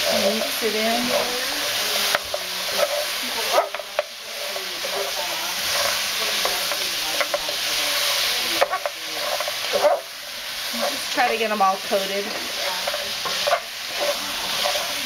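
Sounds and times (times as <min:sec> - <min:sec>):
meat sizzling in a frying pan: 0:00.0 - 0:15.0
spatula scraping and knocking pan: 0:00.0 - 0:15.0.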